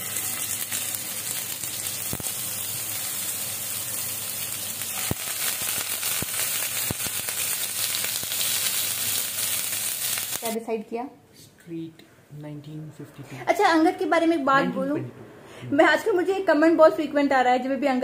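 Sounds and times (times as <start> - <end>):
fish sizzling in oil: 0.0 - 10.6.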